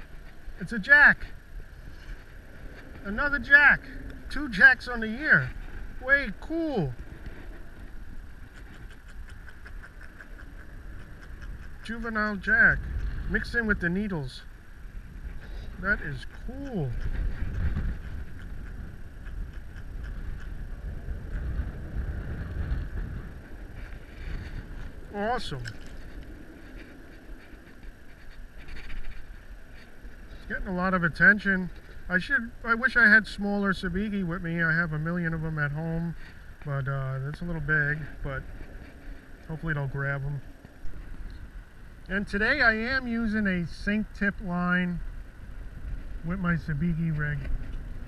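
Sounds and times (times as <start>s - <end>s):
wind rumble on microphone: 0.0s - 48.0s.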